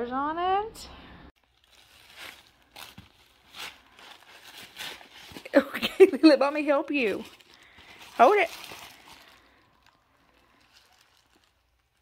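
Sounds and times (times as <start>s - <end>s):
tissue paper rustling: 1.4s - 12.0s.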